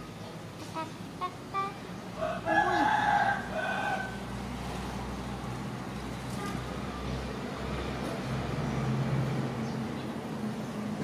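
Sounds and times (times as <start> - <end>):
rooster crowing: 2.2 - 4.3.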